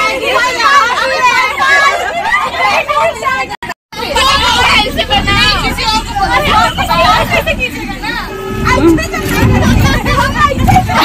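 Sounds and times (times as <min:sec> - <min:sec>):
bus engine rumble: 0:00.0 - 0:11.0
women chattering: 0:00.0 - 0:11.0.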